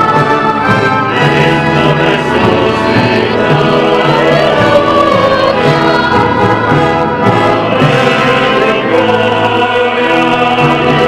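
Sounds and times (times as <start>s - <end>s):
church choir singing a hymn: 0.0s - 11.0s.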